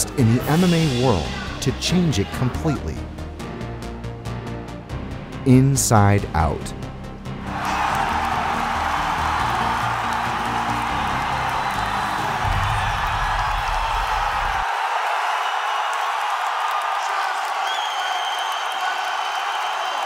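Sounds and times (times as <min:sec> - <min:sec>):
bass-heavy music track: 0:00.0 - 0:14.6
crowd cheering: 0:07.4 - 0:20.0.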